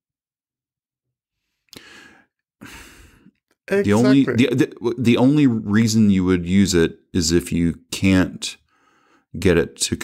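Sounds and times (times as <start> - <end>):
man breathing: 1.4 - 3.4, 8.6 - 9.3
man sighing: 1.7 - 3.3
man speaking: 3.7 - 8.6, 9.4 - 10.0.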